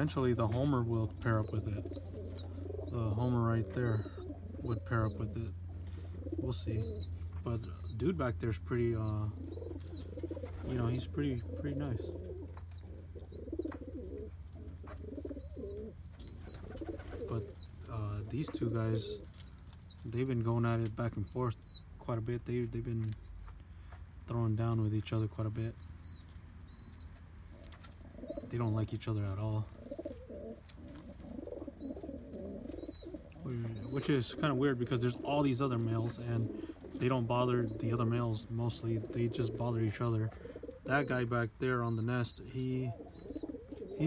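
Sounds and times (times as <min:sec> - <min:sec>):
pigeons cooing: 0:00.0 - 0:44.0.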